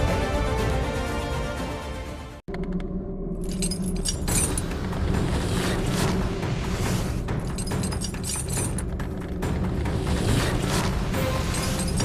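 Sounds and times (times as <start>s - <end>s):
metal chains rattling: 3.4s - 4.8s, 7.3s - 9.0s, 11.2s - 12.0s.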